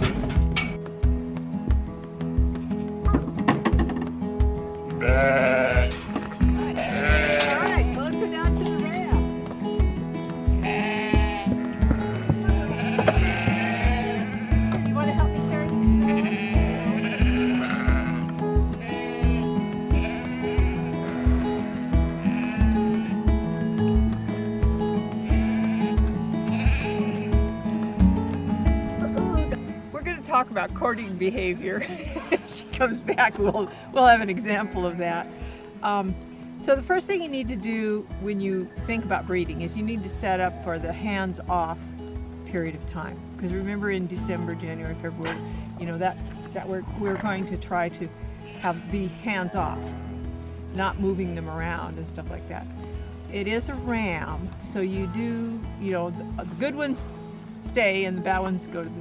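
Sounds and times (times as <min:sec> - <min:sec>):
music with steady beat: 0:00.0 - 0:37.9
sheep bleating: 0:05.0 - 0:09.1, 0:10.5 - 0:23.3, 0:25.2 - 0:27.5, 0:33.7 - 0:35.7, 0:48.4 - 0:50.3.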